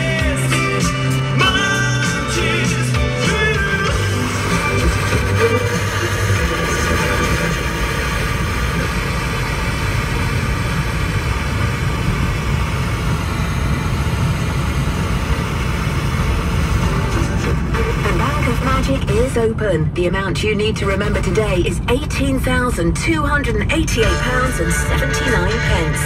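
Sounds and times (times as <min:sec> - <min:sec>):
car radio music: 0:00.0 - 0:26.0
road and engine noise: 0:00.0 - 0:26.0.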